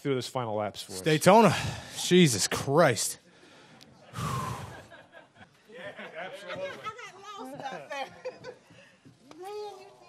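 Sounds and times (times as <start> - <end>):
man exhaling yeah: 4.1 - 4.9.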